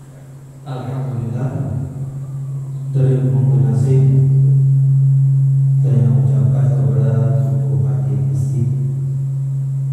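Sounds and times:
low electrical hum: 0.0 - 9.9
voices: 0.1 - 4.4.

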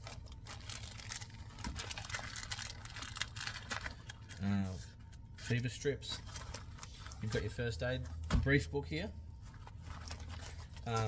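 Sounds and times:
plastic packets crinkling: 0.0 - 7.7, 9.5 - 11.0.

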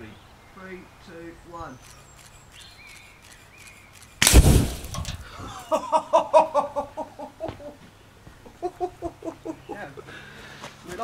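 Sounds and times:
exploding target blast: 4.2 - 5.2.

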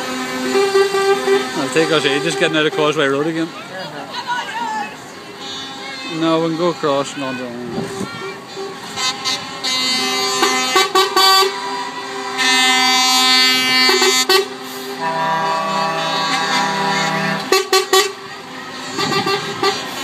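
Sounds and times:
lorry air horns blasting: 0.0 - 20.0.

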